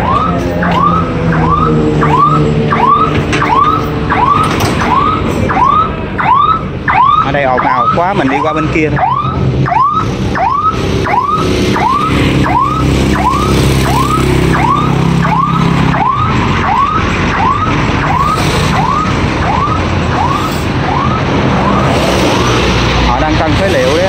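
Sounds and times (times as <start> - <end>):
engine running: 0.0 - 24.0
rising electronic warning tone: 0.0 - 24.0.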